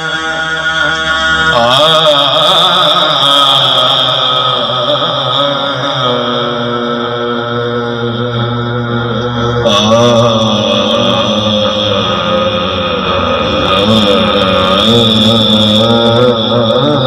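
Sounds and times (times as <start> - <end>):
man singing devotional song: 0.0 - 17.0.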